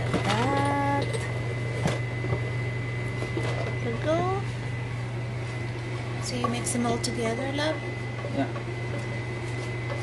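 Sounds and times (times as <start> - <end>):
appliance hum with high whine: 0.0 - 10.0.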